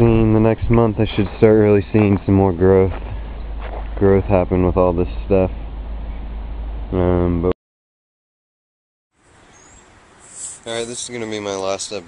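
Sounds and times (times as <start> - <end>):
faint outdoor background noise: 0.0 - 7.5, 9.2 - 12.0.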